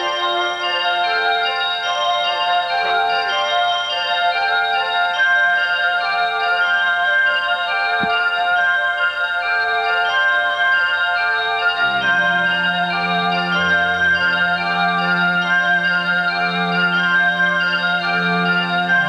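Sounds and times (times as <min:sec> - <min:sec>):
bell-like mallet tones: 0:00.0 - 0:19.0.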